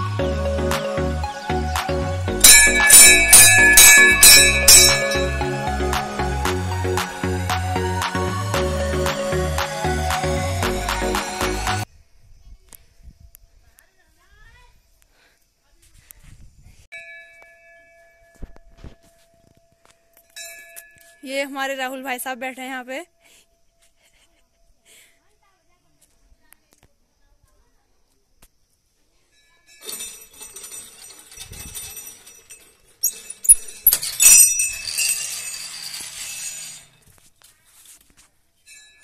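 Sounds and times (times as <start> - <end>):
metal bell ringing: 2.4 - 6.5, 29.6 - 36.7
temple bell ringing: 2.4 - 7.0.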